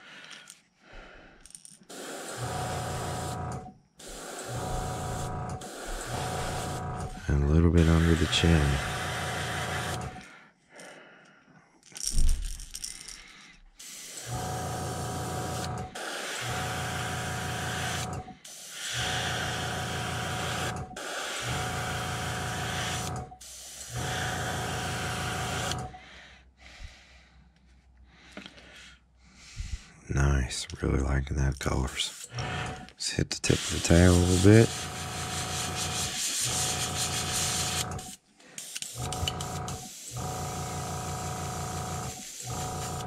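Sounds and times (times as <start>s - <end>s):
airbrush spraying hiss: 1.9s - 3.4s, 4.0s - 10.0s, 13.8s - 14.4s, 15.4s - 21.6s, 22.4s - 24.0s, 33.3s - 40.4s, 42.0s - 43.0s.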